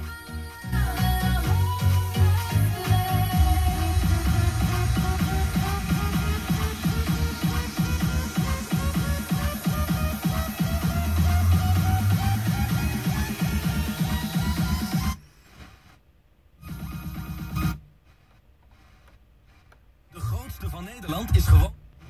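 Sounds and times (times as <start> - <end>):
electronic music on car radio: 0.0 - 15.2, 16.6 - 17.8, 20.1 - 21.8
snatch of radio station: 0.0 - 16.0, 16.6 - 22.0.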